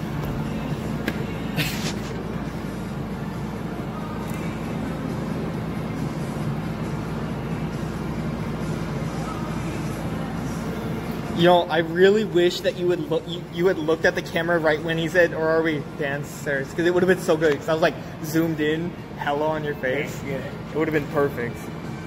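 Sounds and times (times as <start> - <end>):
air conditioner humming: 0.0 - 22.0.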